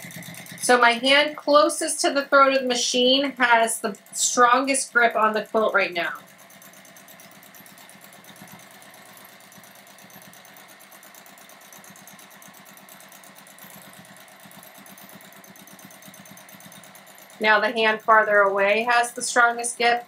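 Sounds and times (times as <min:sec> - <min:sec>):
sewing machine stitching: 0:00.0 - 0:20.0.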